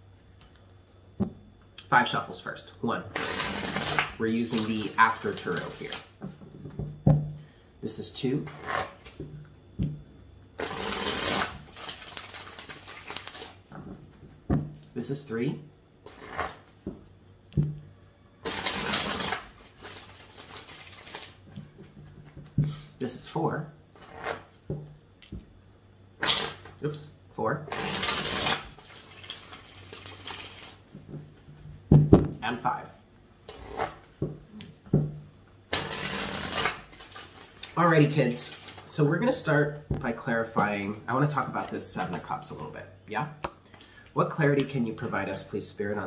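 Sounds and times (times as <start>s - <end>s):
cards rubbing: 3.1s - 6.1s, 10.6s - 13.6s, 16.1s - 16.7s, 18.4s - 21.5s, 26.2s - 26.7s, 27.7s - 30.8s, 35.7s - 38.9s
cards being shuffled: 3.2s - 6.1s, 10.6s - 13.6s, 18.4s - 22.9s, 27.7s - 30.8s, 35.7s - 39.0s.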